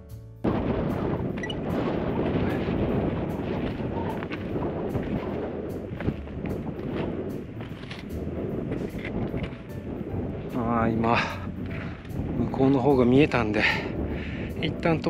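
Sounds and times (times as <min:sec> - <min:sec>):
wind buffeting microphone: 0:00.4 - 0:15.0.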